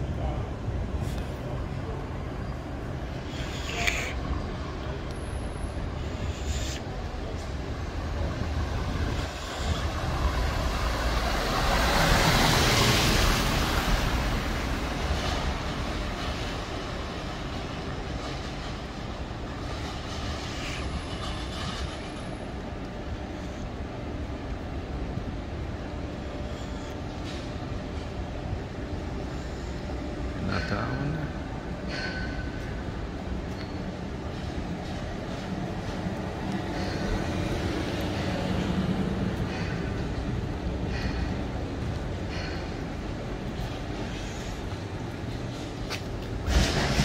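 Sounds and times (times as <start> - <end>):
traffic rumble: 0.0 - 47.0
loud rush of passing vehicle: 7.8 - 16.9, 45.2 - 47.0.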